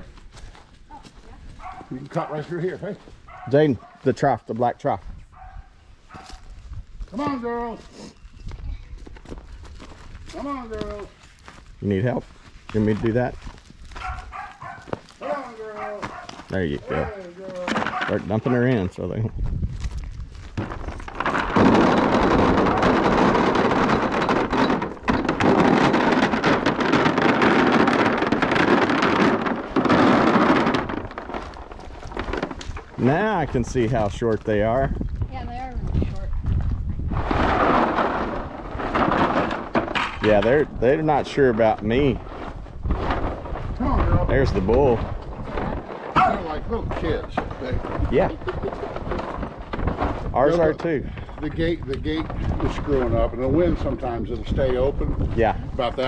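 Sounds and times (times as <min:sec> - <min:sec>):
faint dog barking: 0:01.6 - 0:02.5, 0:03.3 - 0:04.1, 0:05.3 - 0:06.4, 0:14.0 - 0:18.8.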